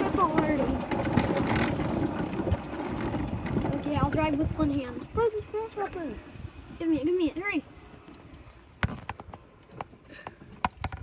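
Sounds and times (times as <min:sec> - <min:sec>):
cart rattling: 0:00.0 - 0:06.2
tyres crunching on gravel: 0:00.0 - 0:06.2.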